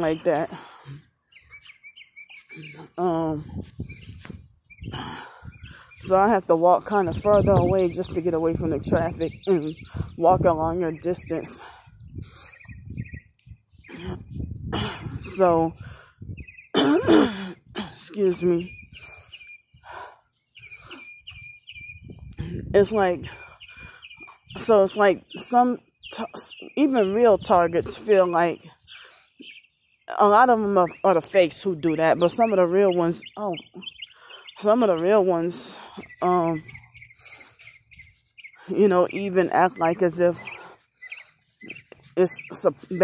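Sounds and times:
songbird chirping: 0.0s - 14.6s, 15.2s - 43.0s
small bird singing: 0.0s - 43.0s.

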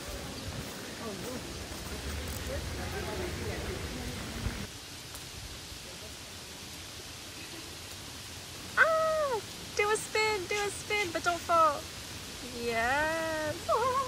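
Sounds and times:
faint distant voices: 0.0s - 4.8s
steady rain hiss: 0.0s - 14.0s
person crying out: 8.8s - 9.5s, 13.5s - 14.0s.

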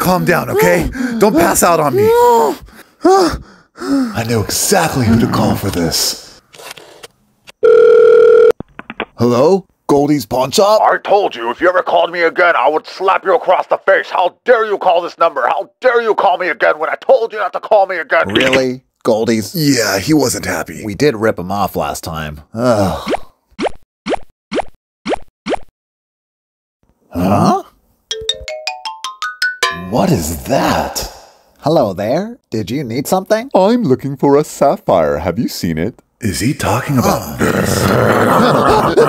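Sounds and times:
telephone dial tone: 7.6s - 8.6s
cartoon bloops rising in pitch: 18.3s - 18.6s.

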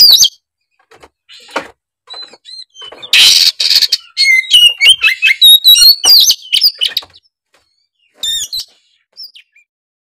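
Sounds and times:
bird singing: 0.0s - 9.7s.

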